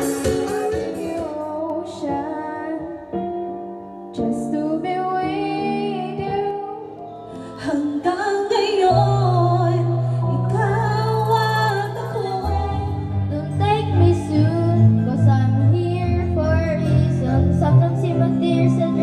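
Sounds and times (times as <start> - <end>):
woman singing with instruments: 0.0 - 19.0.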